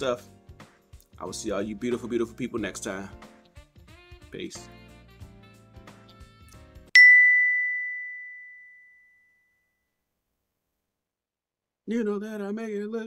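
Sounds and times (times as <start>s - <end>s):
high bell-like ding: 7.0s - 9.6s.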